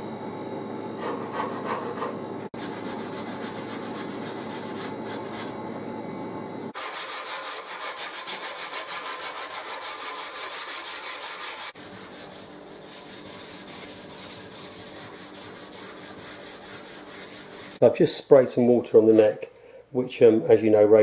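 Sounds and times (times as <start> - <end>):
hand rubbing wood: 6.8 - 17.8.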